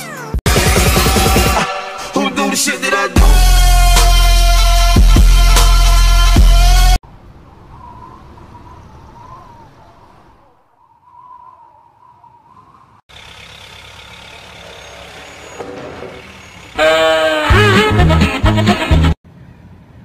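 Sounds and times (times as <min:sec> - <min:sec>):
faint city traffic: 0:07.0 - 0:11.1, 0:12.0 - 0:17.6, 0:19.2 - 0:20.0.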